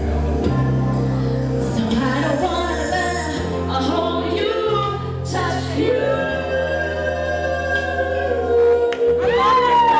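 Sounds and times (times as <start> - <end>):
woman singing karaoke: 0.4 - 9.9.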